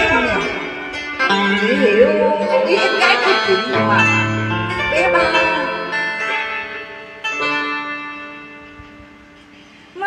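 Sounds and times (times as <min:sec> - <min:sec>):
plucked string chord ringing: 0:00.0 - 0:09.4.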